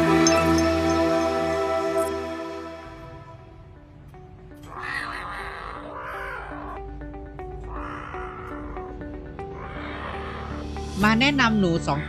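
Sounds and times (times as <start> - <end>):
soft background music: 0.0 - 12.0
kitten crying harshly: 4.7 - 6.8.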